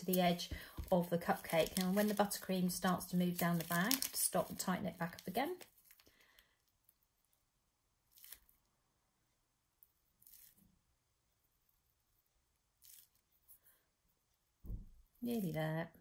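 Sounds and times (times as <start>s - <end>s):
plastic piping bag rustling: 0.0s - 7.4s, 8.0s - 8.6s, 10.1s - 10.6s, 12.8s - 13.4s.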